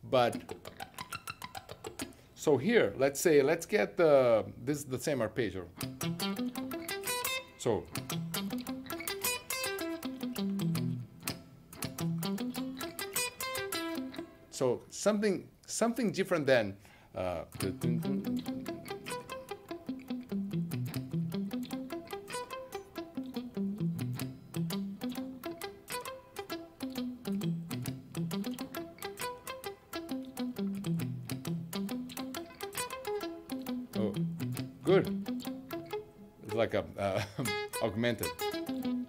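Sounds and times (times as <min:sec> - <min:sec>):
electric guitar sweep-picked arpeggios: 0:00.3 - 0:02.2, 0:05.8 - 0:14.4, 0:17.5 - 0:36.2, 0:37.4 - 0:39.0.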